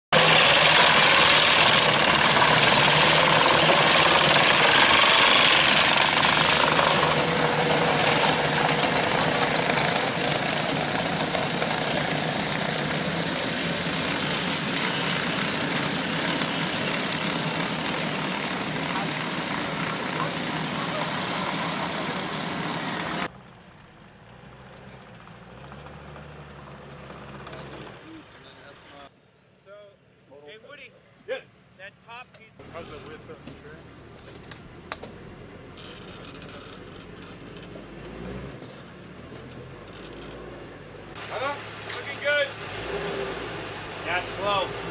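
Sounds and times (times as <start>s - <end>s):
engine and track noise: 0.1s - 29.5s, 30.7s - 44.9s
tracked vehicles driving: 0.1s - 44.9s.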